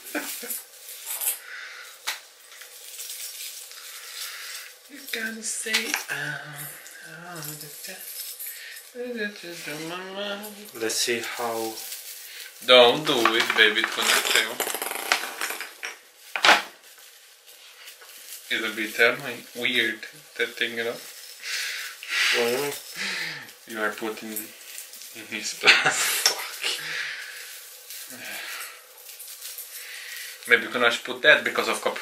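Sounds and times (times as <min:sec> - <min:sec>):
plastic tree branches rustling: 0:00.0 - 0:32.0.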